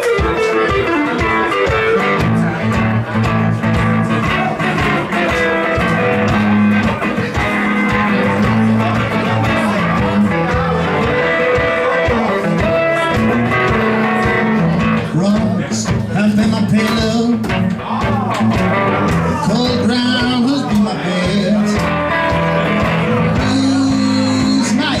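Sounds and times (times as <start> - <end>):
strummed guitar: 0.0 - 25.0
person singing: 4.1 - 25.0.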